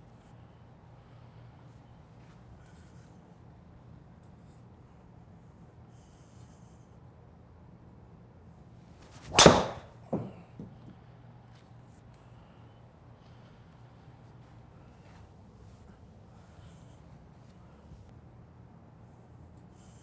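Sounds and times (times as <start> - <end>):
golf club swing whoosh: 9.0 - 9.9
loud crack of club hitting ball: 9.1 - 10.3.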